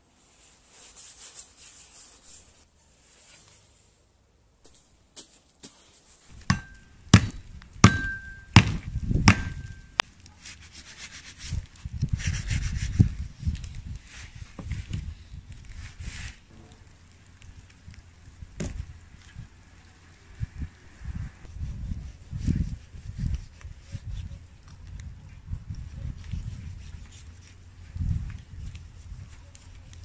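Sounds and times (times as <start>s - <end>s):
hatchet chops: 6.3s - 9.9s
metallic ring of blade: 7.8s - 8.5s.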